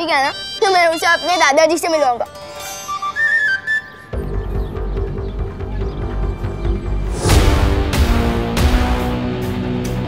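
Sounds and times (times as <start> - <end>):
low heavy music: 0.0 - 10.0
high whistling tune: 2.7 - 4.5.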